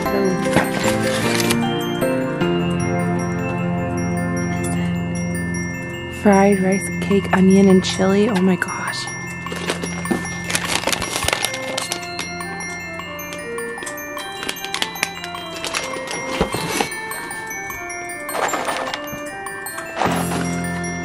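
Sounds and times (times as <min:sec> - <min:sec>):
packaging crinkling: 0:00.0 - 0:01.7, 0:09.1 - 0:21.0
chime-like mallet melody: 0:00.0 - 0:21.0.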